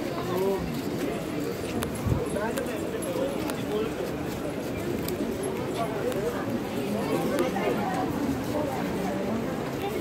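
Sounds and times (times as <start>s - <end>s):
passers-by talking: 0.0s - 10.0s.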